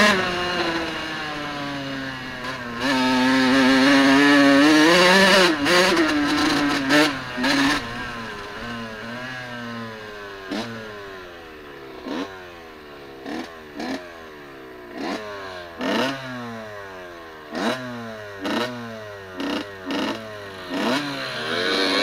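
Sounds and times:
dirt bike engine revving: 0.0s - 22.0s.

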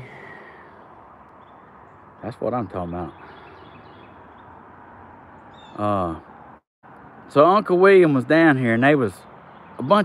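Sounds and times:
outdoor background noise: 0.0s - 10.0s
faint bird chirps: 5.3s - 6.2s.

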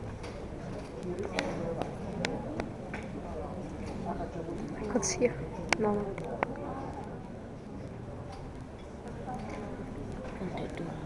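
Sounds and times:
murmur of many people talking: 0.0s - 11.0s.

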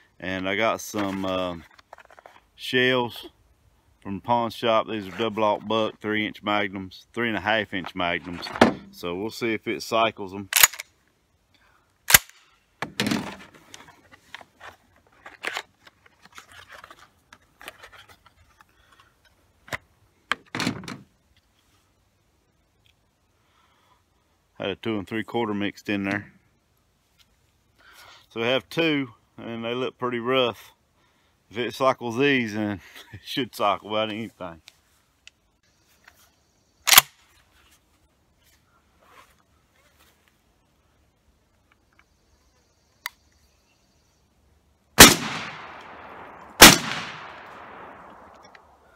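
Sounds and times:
sharp metallic gun click: 10.6s - 10.9s, 12.1s - 12.4s
shotgun blast: 45.0s - 48.4s.

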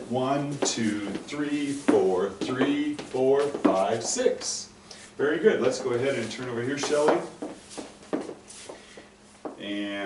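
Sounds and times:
footsteps on wooden floor: 0.4s - 4.3s, 5.6s - 9.6s.

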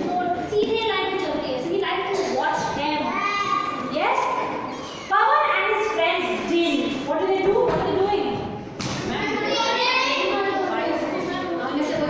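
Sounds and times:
children's voices: 0.0s - 12.0s.

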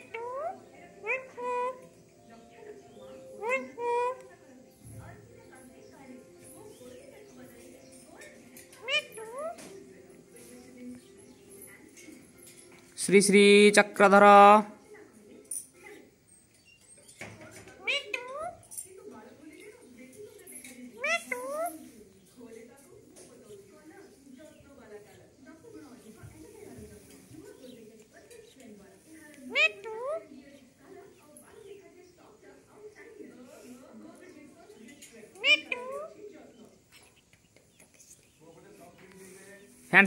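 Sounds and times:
parakeet meow-like calls: 0.0s - 1.8s, 3.4s - 4.2s, 21.0s - 21.7s, 29.5s - 30.2s, 35.4s - 36.2s
faint voices: 0.0s - 13.0s, 14.7s - 40.0s.

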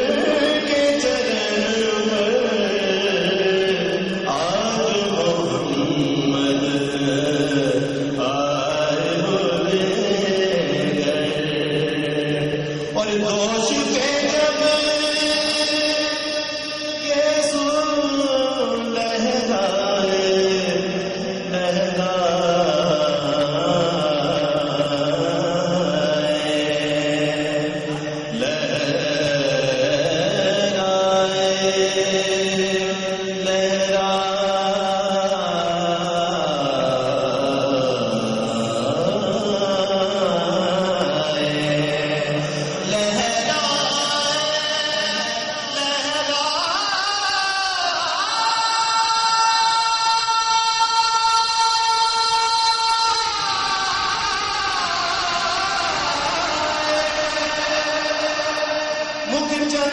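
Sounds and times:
man chanting devotional song: 0.0s - 59.9s.

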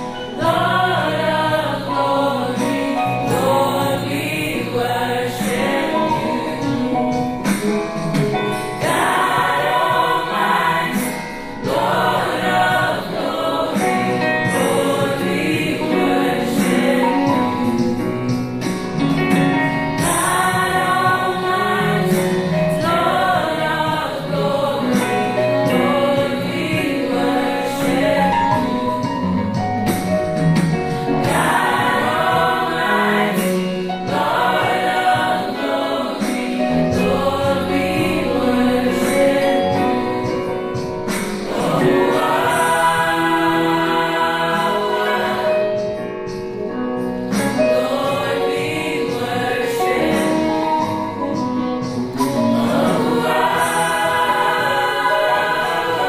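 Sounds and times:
gospel choir singing: 0.0s - 56.0s.

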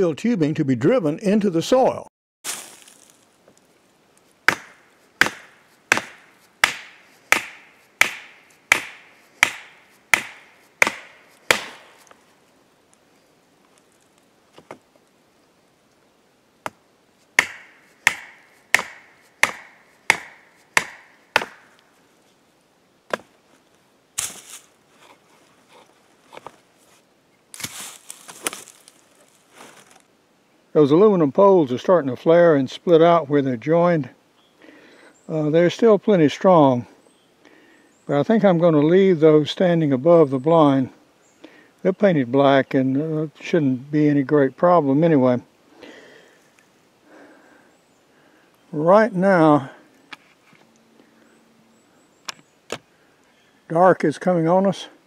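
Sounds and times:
scuffing and rustling: 2.4s - 3.7s, 24.2s - 30.1s
hammer striking metal stake: 4.5s - 12.2s, 17.4s - 21.7s.

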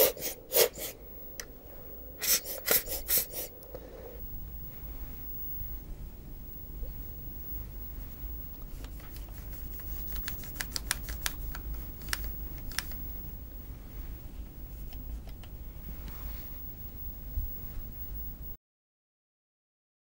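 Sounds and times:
low steady hum: 0.0s - 18.6s
cloth wiping: 2.2s - 3.6s
small clicks and taps: 8.5s - 13.0s, 14.9s - 15.6s.

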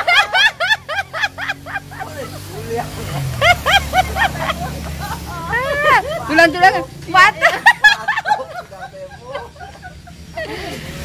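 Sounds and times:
laughter bursts: 0.0s - 6.3s, 7.4s - 11.0s
vehicle passing rumble: 0.0s - 11.0s.

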